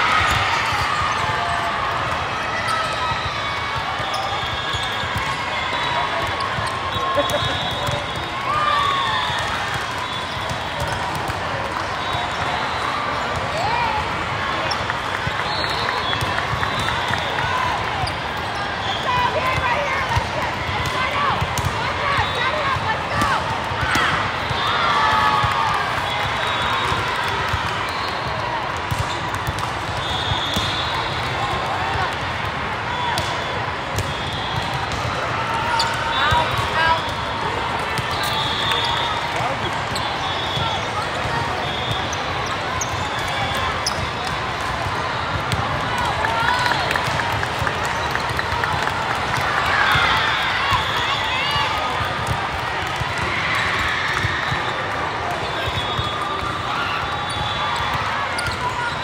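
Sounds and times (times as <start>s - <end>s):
hubbub of voices in echoing hall: 0.0s - 59.0s
volleyballs hit and bouncing: 0.0s - 59.0s.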